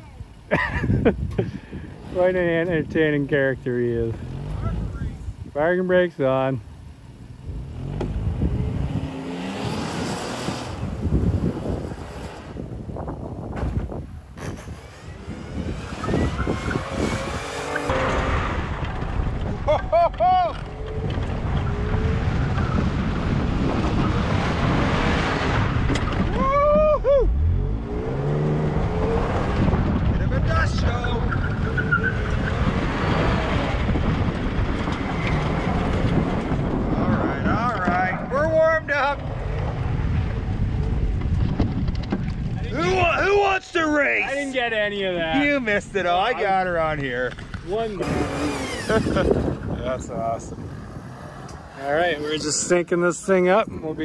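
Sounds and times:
suv engine driven hard: 0.0 - 54.0
wind buffeting microphone: 0.3 - 5.6, 7.4 - 43.7, 44.6 - 54.0.

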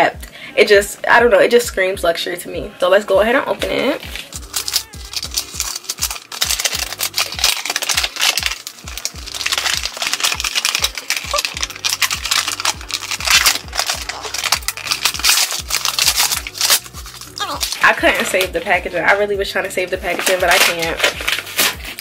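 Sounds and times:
background music with bass beat: 0.0 - 22.0
paper packaging crinkling and tearing: 4.1 - 19.2, 20.1 - 22.0.

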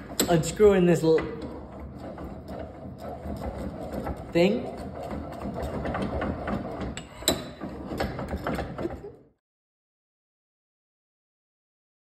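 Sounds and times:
metal parts ticking and rattling: 0.0 - 9.1.

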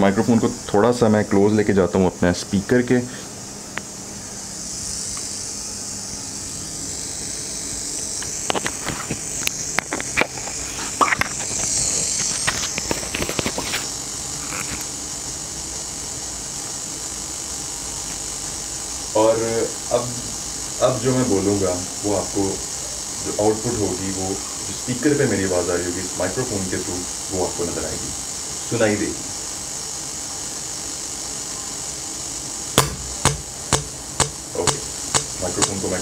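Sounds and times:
sharp evenly spaced clicks: 32.8 - 35.8
loudspeaker hiss: 32.8 - 36.0.

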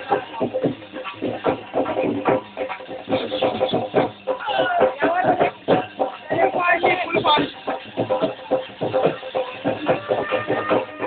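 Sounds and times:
fast drum beat: 0.0 - 11.0.

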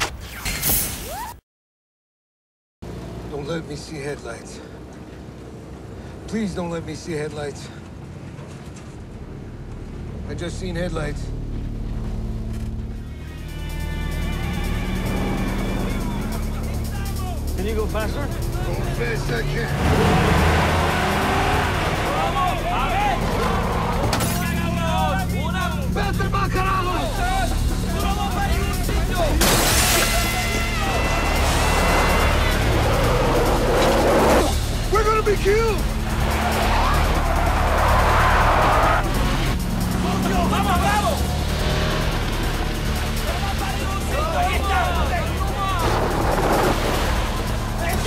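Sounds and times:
film score music: 8.2 - 48.0
car engine running: 8.3 - 48.0
voices: 13.1 - 48.0
loud rushing noise: 29.4 - 48.0.

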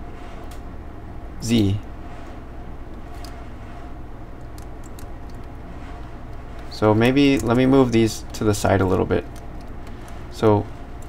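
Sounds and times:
low background hum: 0.0 - 11.0
keyboard and mouse clicks: 3.0 - 3.4, 4.4 - 5.6, 6.3 - 10.3.

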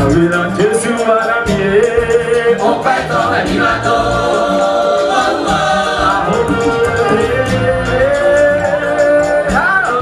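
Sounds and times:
choir singing in harmony: 0.3 - 10.0.

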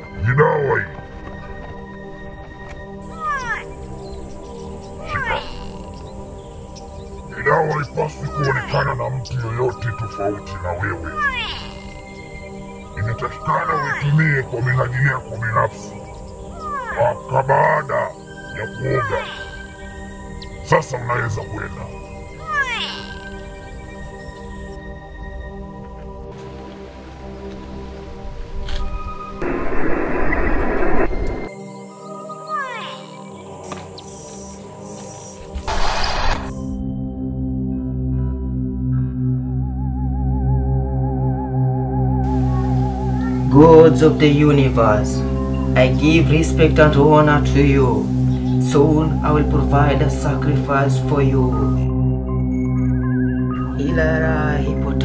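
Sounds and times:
background music drone: 0.0 - 55.0
animal cries falling in pitch: 5.0 - 5.9, 11.0 - 12.0
cat yowling: 5.0 - 5.9, 11.0 - 12.0, 16.5 - 17.1
loud hiss: 35.6 - 36.5.

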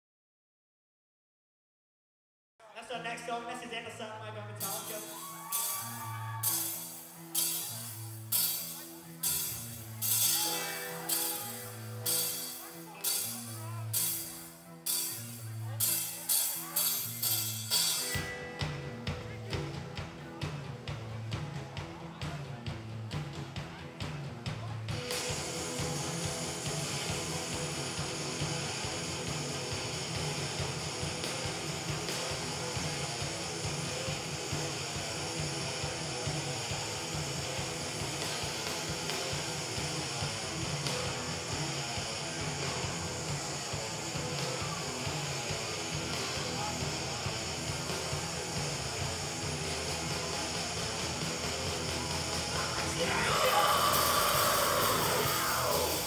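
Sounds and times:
vocals: 2.6 - 6.0, 52.4 - 56.0
live rock band playing: 4.5 - 56.0
sliding high guitar line: 4.6 - 19.4.

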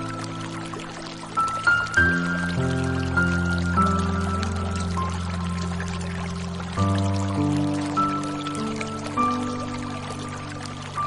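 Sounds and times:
running pouring water: 0.0 - 11.0
slow soft piano music: 0.0 - 11.0.

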